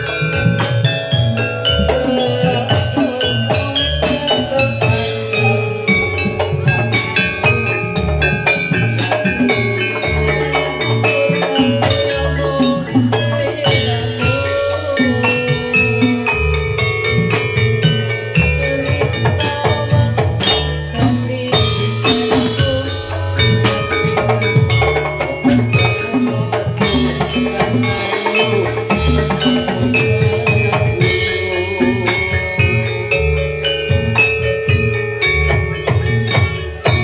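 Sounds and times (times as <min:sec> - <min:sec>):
drum beats: 0:00.0 - 0:37.0
gamelan metal keyed instruments: 0:00.0 - 0:37.0.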